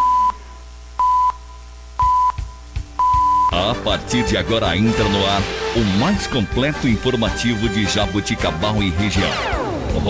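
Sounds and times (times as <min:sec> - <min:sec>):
short electronic beeps: 0:01.0 - 0:03.6.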